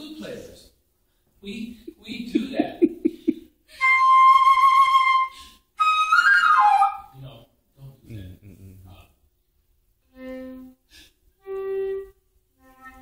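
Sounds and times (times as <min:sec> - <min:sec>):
concert flute playing: 0:03.7 - 0:07.1, 0:11.4 - 0:13.0.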